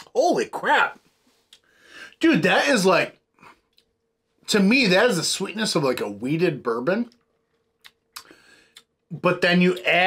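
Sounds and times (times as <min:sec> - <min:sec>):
soft breathy hiss: 0:01.0 - 0:02.2.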